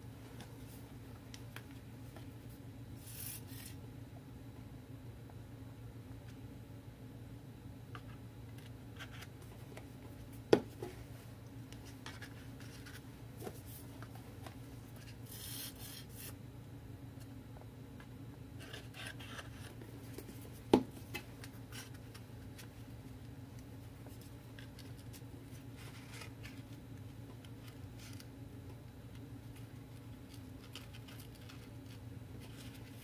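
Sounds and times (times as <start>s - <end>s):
steady low hum: 0.0s - 33.0s
paper rubbing and rustling: 24.1s - 26.8s, 30.3s - 33.0s.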